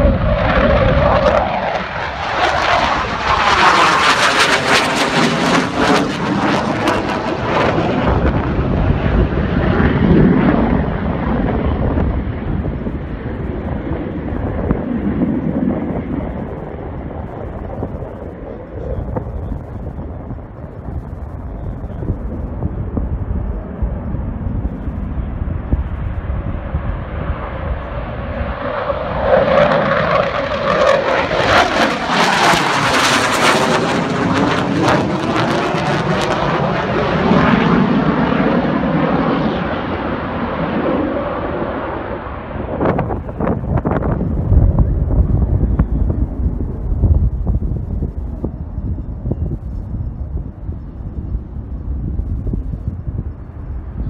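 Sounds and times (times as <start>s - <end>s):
fighter jet flying overhead: 0.0s - 54.0s.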